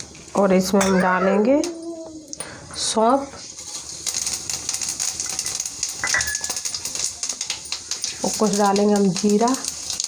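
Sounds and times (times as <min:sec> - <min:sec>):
seeds sizzling in hot oil: 0:00.0 - 0:10.0.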